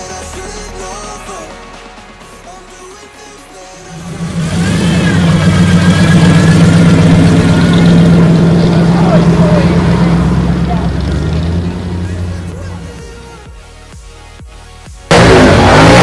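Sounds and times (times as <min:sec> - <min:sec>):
car engine running: 0:03.9 - 0:13.4, 0:15.1 - 0:16.0
voices: 0:03.9 - 0:13.5.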